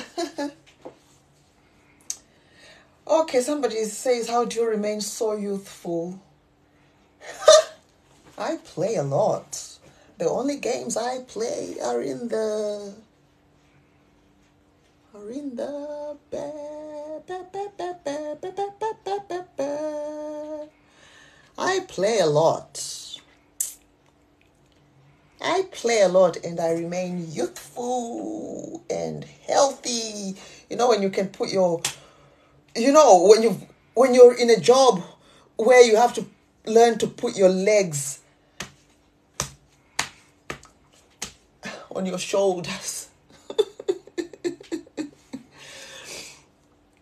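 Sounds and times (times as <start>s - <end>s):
breath: 2.3s - 3.0s, 20.8s - 21.5s, 45.6s - 46.5s
person speaking: 7.2s - 13.1s, 15.1s - 20.7s, 21.6s - 23.8s, 25.4s - 32.0s, 32.7s - 38.8s, 39.4s - 46.4s
woman humming: 15.2s - 20.8s.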